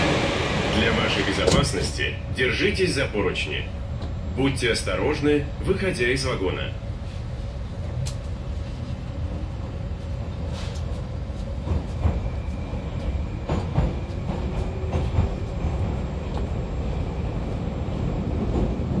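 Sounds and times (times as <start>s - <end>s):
train running rumble: 0.0s - 19.0s.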